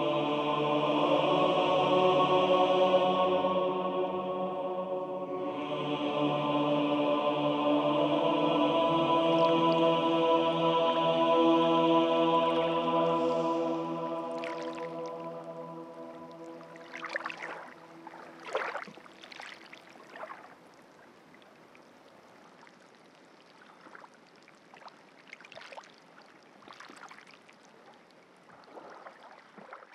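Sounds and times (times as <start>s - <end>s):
sung chord with reverberant tail: 0.0s - 18.4s
water lapping and gurgling: 13.4s - 29.9s.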